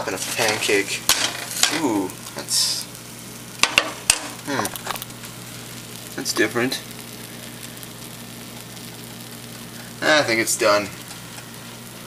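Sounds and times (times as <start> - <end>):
batter sizzling in a frying pan: 0.0 - 12.0.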